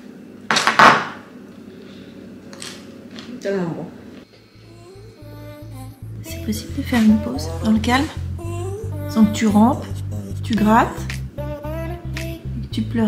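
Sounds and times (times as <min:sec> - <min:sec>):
music with low beat: 0:04.6 - 0:13.0.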